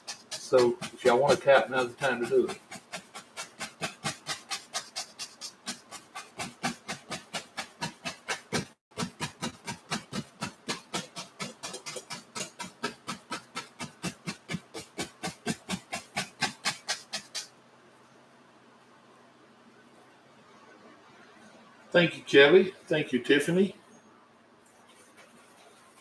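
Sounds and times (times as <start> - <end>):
brush tapping on canvas: 0.0 - 17.5.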